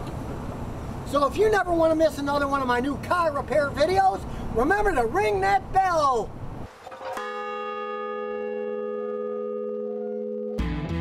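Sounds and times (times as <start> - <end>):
large bell ringing: 6.9 - 10.6.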